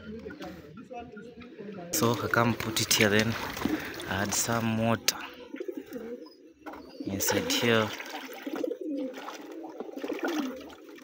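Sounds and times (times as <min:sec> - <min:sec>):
water splashing into metal pan: 0:02.2 - 0:04.6, 0:07.2 - 0:11.0.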